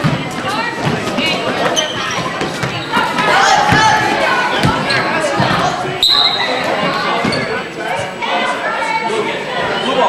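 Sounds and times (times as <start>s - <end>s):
people shouting in echoing hall: 2.9s - 7.2s
shrill whistle blast: 6.0s - 6.6s.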